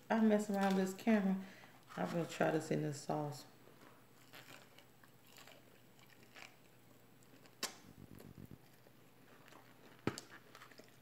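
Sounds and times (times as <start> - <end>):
chewing chicken wing: 4.2 - 11.0.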